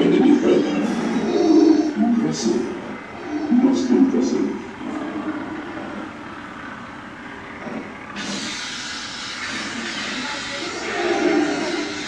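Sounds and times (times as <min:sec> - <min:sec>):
low electronic hum: 0:00.0 - 0:12.0
loud steady hiss: 0:08.1 - 0:12.0.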